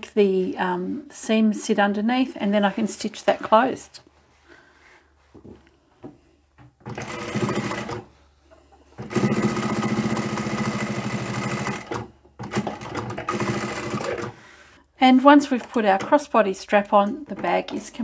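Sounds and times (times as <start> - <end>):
electric sewing machine stitching: 6.8 - 8.1, 9.0 - 14.4.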